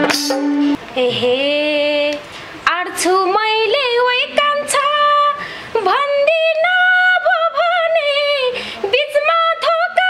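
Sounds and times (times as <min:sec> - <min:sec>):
woman singing folk song: 0:00.8 - 0:10.0.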